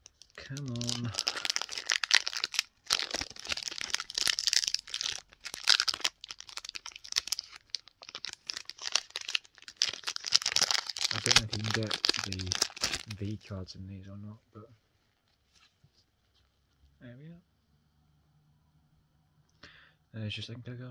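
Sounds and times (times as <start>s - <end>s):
foil wrapper crinkling and tearing: 0.0s - 13.4s.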